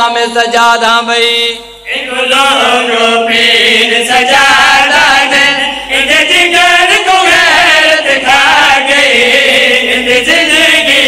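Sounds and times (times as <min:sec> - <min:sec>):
men chanting into microphones: 0:00.0 - 0:11.0.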